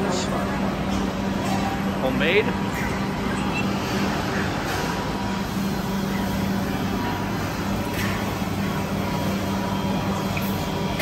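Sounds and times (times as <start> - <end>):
continuous mechanical hum: 0.0 - 11.0.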